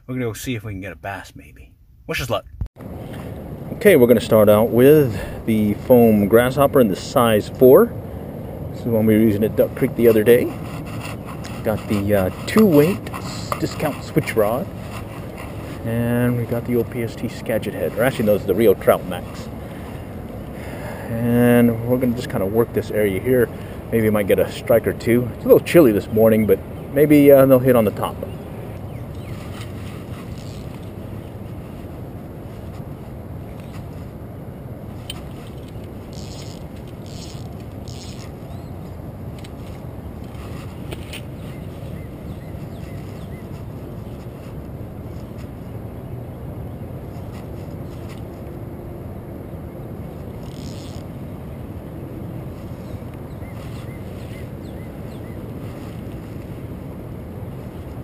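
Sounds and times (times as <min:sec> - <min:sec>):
rushing outdoor background noise: 0:02.1 - 0:58.0
faint scrapes and rustles: 0:09.2 - 0:20.1, 0:29.1 - 0:34.2, 0:34.9 - 0:45.8, 0:47.0 - 0:48.5, 0:50.4 - 0:51.1, 0:52.4 - 0:54.5, 0:55.5 - 0:56.8.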